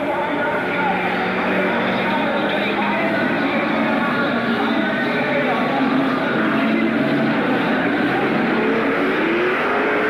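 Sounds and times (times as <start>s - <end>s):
race car engines running: 0.0s - 10.0s.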